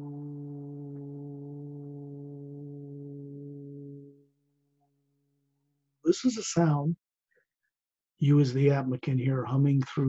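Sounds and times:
man humming low note: 0.0 - 4.3.

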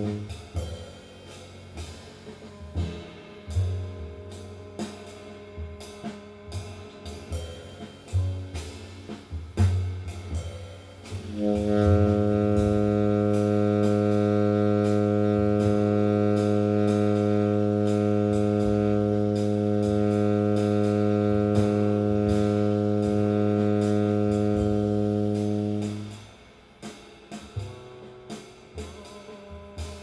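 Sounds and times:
tenor saxophone long tone: 0.0 - 0.4, 11.3 - 26.2.

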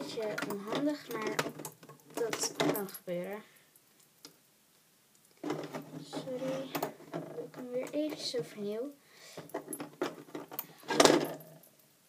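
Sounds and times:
girl speaking: 0.0 - 1.6, 2.2 - 3.5, 6.0 - 9.0.

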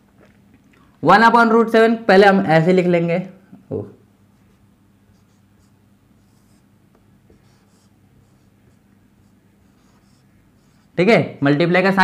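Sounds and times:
faint low hum: 2.0 - 12.0.

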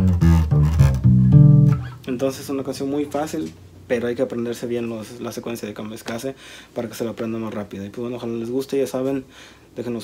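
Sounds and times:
electric bass plucked notes: 0.0 - 2.9.

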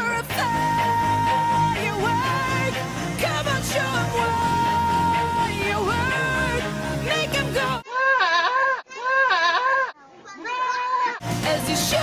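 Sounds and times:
pop music: 0.0 - 7.8, 11.2 - 12.0
goat bleating: 7.8 - 11.2.

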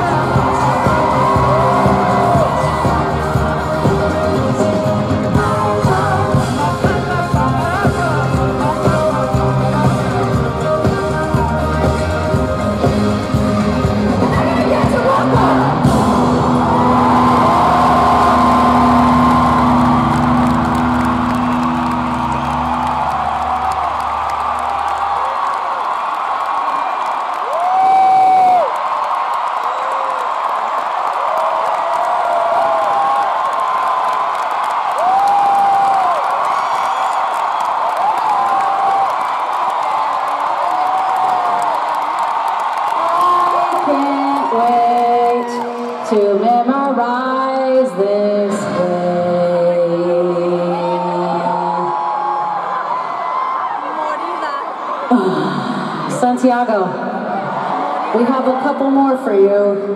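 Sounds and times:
crowd cheering and screaming: 0.0 - 59.9.

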